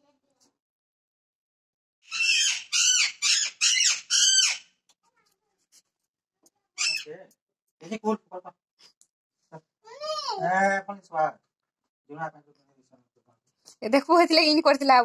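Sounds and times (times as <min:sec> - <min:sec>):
parrot squawking: 0:02.0 - 0:04.7, 0:06.8 - 0:07.1.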